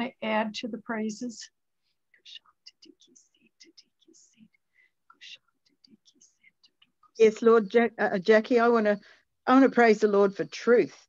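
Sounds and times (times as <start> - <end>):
person whispering prayer: 2.1 - 9.8.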